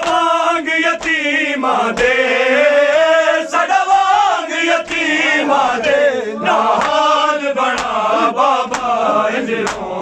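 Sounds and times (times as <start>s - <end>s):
men chanting in unison: 0.0s - 10.0s.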